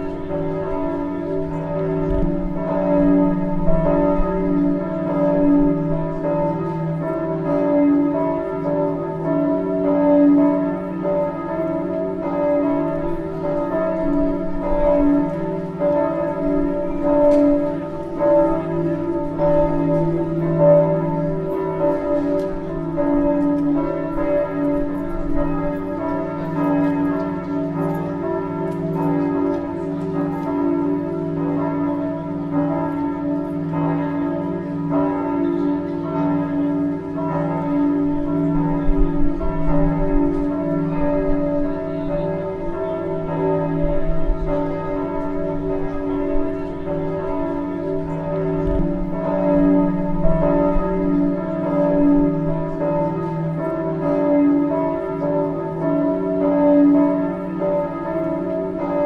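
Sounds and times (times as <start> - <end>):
church bells pealing: 0.0 - 59.0.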